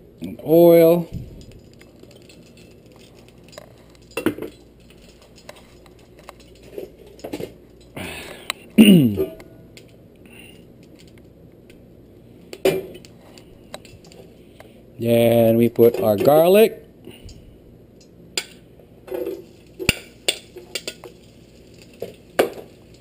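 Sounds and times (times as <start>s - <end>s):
metal utensils clinking: 1.4s - 8.0s, 18.4s - 23.0s
person clearing throat: 8.8s - 9.4s.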